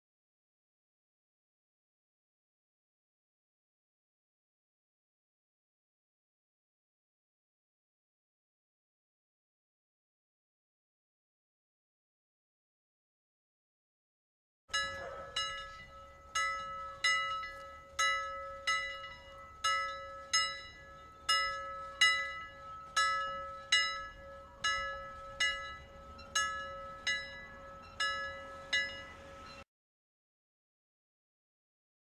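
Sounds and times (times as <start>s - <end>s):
bell struck rapidly: 14.8s - 29.6s.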